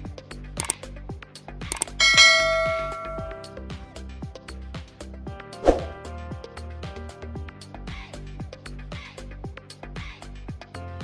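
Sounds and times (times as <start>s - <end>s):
background music with beat: 0.0s - 11.0s
bell chime ding: 2.0s - 3.6s.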